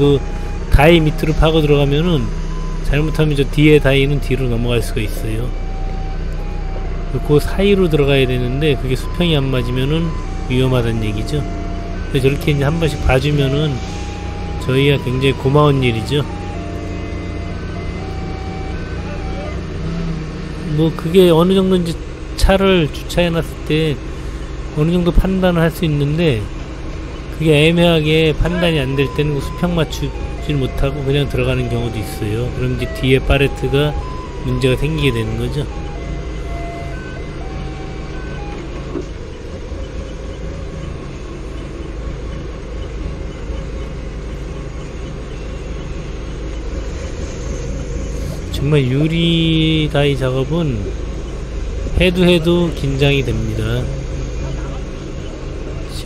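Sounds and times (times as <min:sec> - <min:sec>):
forklift engine low rumble: 0:00.0 - 0:56.0.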